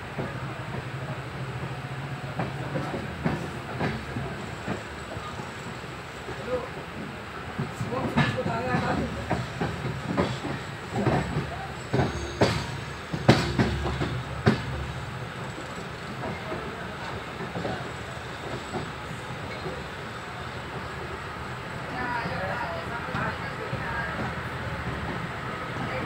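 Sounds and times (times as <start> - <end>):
train running rumble: 0.0 - 26.0
train wheels knocking over rail joints: 7.6 - 19.9.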